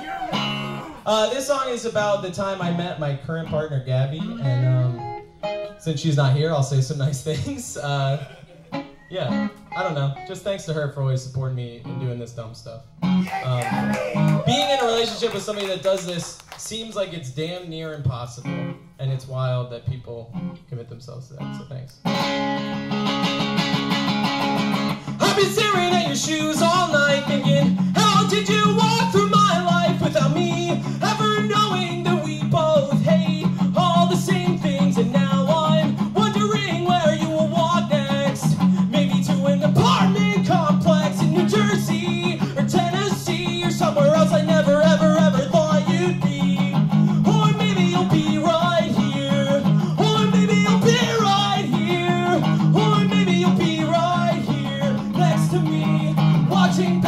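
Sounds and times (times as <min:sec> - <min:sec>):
strummed electric guitar: 0:00.0 - 0:06.0, 0:07.3 - 0:10.7, 0:13.0 - 0:14.4, 0:21.4 - 0:57.0
man singing: 0:25.1 - 0:57.0.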